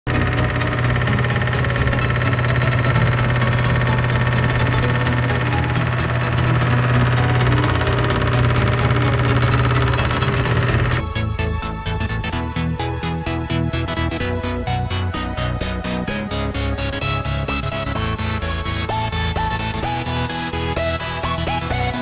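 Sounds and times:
electric motor humming: 0.1s - 11.1s.

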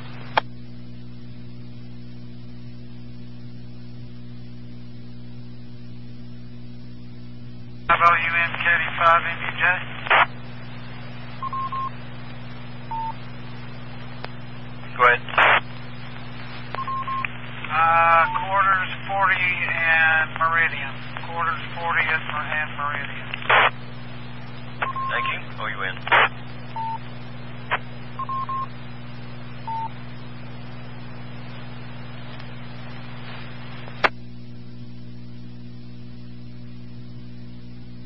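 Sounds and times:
steady hum: 0.0s - 38.0s
unclear radio speech: 7.9s - 11.4s, 14.0s - 23.8s, 24.7s - 26.6s
short beeps: 11.4s - 11.9s, 12.9s - 13.2s, 16.8s - 17.3s, 24.8s - 25.4s, 26.7s - 27.0s, 28.2s - 28.7s, 29.7s - 29.9s.

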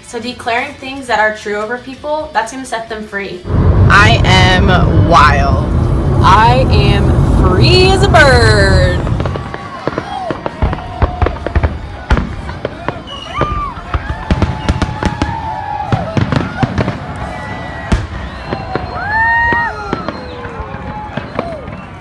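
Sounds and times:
fireworks bangs and crackles: 3.4s - 22.0s.

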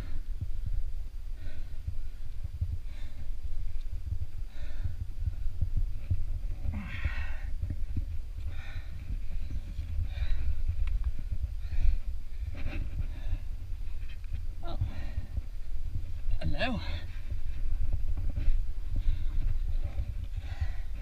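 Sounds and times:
person breathing hard: 0.0s - 16.0s, 16.7s - 21.0s
steady low rumble: 0.0s - 21.0s
heavy exhalations: 8.4s - 15.6s, 16.6s - 21.0s.

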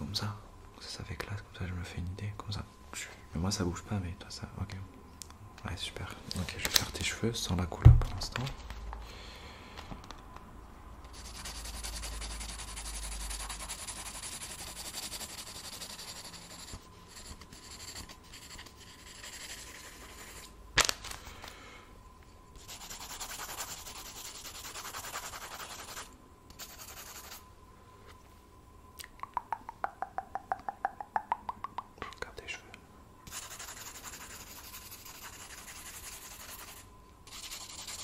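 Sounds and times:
pencil scratching on paper: 11.1s - 20.5s, 22.6s - 27.4s, 33.3s - 38.0s.

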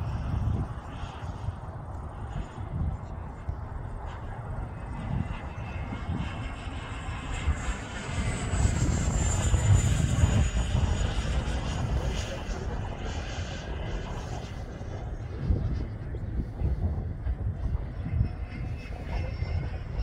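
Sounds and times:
model jet fan whine passing by: 0.0s - 20.0s.

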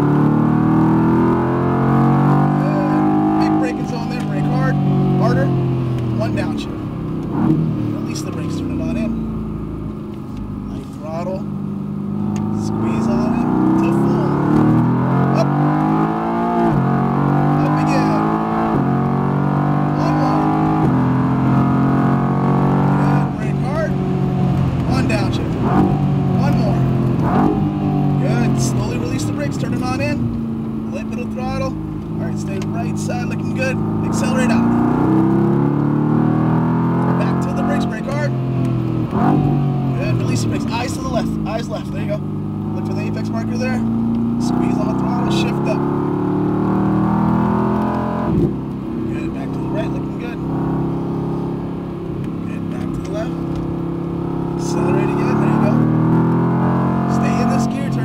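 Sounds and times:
car engine accelerating hard: 0.0s - 58.0s.

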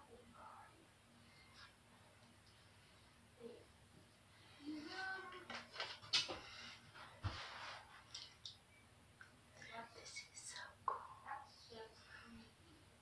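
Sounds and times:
woman whispering: 0.0s - 0.9s, 9.6s - 12.6s.

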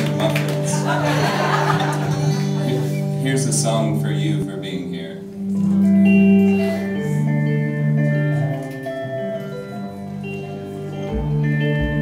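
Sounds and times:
live band with ringing guitars: 0.0s - 12.0s.

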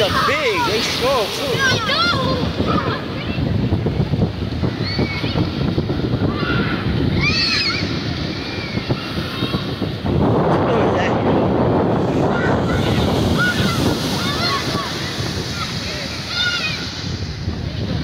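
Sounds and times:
children shouting: 0.0s - 3.5s, 4.7s - 9.8s, 12.2s - 17.1s
ocean surf breaking: 0.0s - 18.0s
wind rumbling on microphone: 0.0s - 18.0s.

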